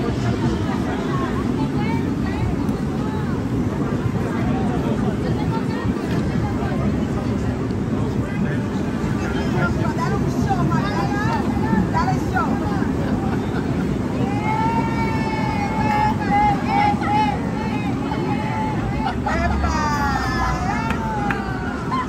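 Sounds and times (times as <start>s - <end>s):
city traffic rumble: 0.0s - 22.0s
crowd talking: 0.0s - 22.0s.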